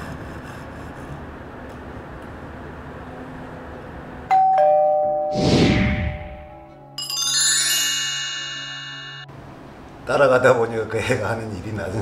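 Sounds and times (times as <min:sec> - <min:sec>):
two-note ding-dong chime: 0:04.3 - 0:05.4, 0:06.5 - 0:09.3.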